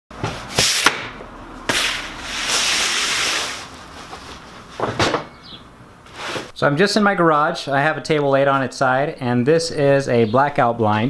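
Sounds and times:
vinyl sheet rustling: 1.7s - 5.0s.

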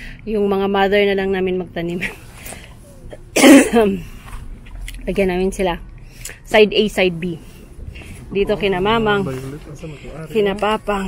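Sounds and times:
woman coughing: 3.1s - 4.0s.

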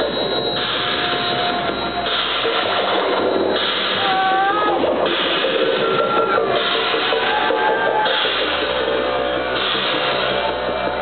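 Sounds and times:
loud techno music: 0.0s - 11.0s.

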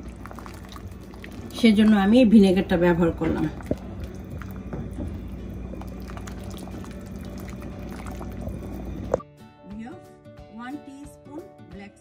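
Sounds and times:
chutney bubbling in a pot: 0.0s - 9.2s.

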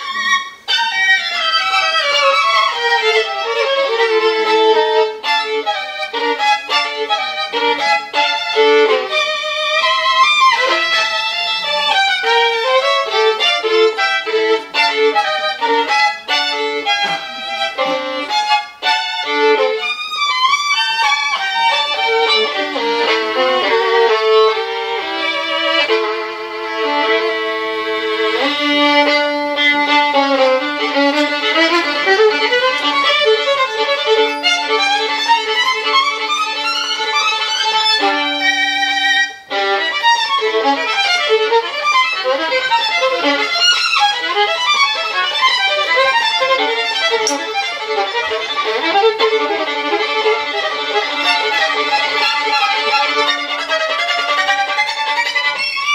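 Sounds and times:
solo violin bowed: 0.0s - 55.9s.

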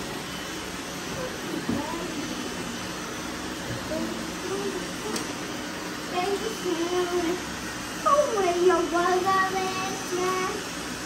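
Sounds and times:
robot vacuums running: 0.0s - 11.0s.

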